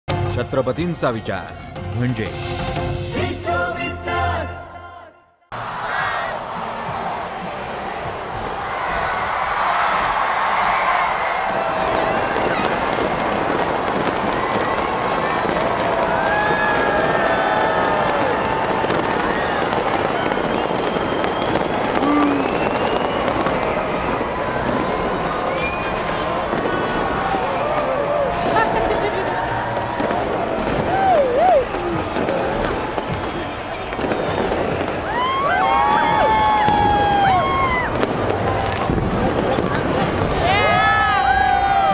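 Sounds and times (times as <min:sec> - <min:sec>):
crowd shouting and whooping: 0:05.6 - 0:41.9
fireworks crackling and popping: 0:06.7 - 0:41.9.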